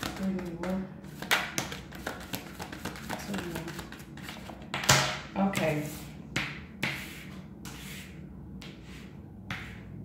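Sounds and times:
cards being shuffled: 1.2s - 4.6s.

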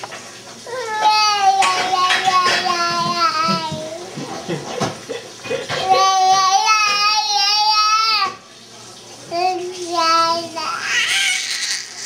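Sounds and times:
baby squealing: 10.7s - 12.0s.

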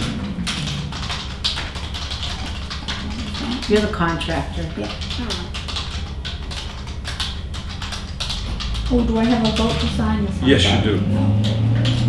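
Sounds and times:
taps and clicks on desk: 0.0s - 10.0s, 11.2s - 12.0s.

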